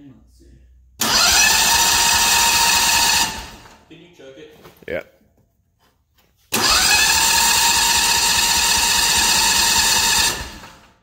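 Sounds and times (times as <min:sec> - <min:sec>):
electric starter whine: 0:01.0 - 0:03.8, 0:06.5 - 0:11.0.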